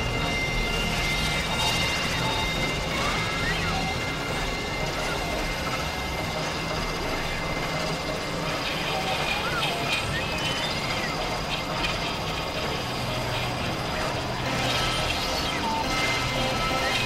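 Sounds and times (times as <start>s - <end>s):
synthesizer noise drone: 0.0s - 17.0s.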